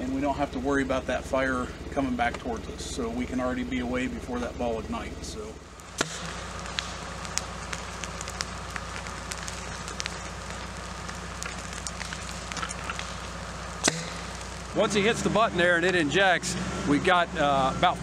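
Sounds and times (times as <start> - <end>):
ground fire crackling: 0.0 - 18.0
low hum: 0.0 - 18.0
sharp pops of fire: 5.7 - 14.8
loud sharp crack: 5.8 - 14.8.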